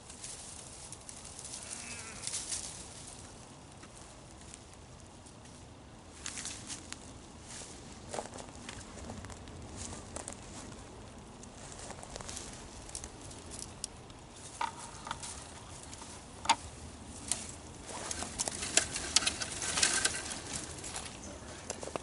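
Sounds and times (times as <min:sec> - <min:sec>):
brush rustling and crackling: 0:00.0 - 0:22.0
branches snapping: 0:11.4 - 0:22.0.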